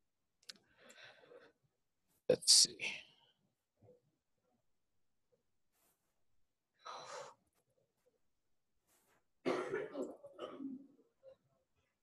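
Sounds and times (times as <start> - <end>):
person clearing their throat: 9.4 - 11.0.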